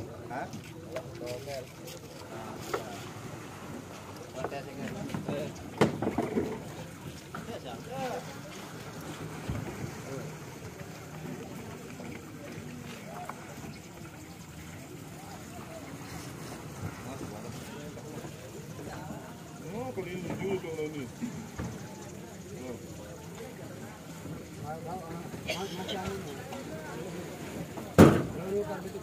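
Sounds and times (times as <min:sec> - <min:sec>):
faint background voices: 0:00.0 - 0:29.0
low rumble of boats: 0:00.0 - 0:29.0
sharp knock: 0:28.0 - 0:28.3.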